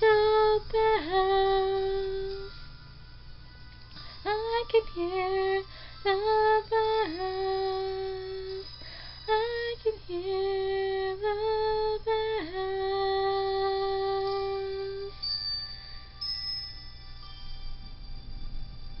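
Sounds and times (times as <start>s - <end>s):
woman singing: 0.0s - 2.6s, 4.2s - 8.7s, 9.3s - 15.2s.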